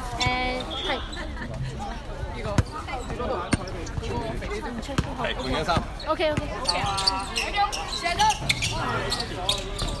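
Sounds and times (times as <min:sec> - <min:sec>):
voices talking: 0:00.0 - 0:10.0
basketball bouncing on hard court: 0:04.9 - 0:06.9.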